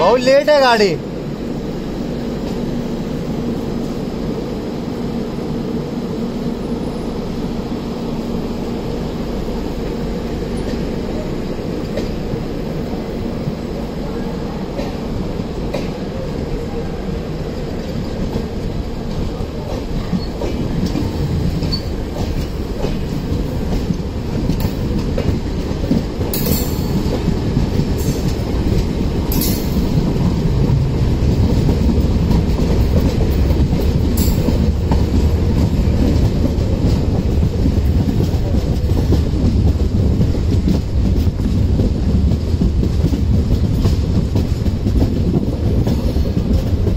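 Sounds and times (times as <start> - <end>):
train wheels rumbling on rail: 0.0 - 46.9.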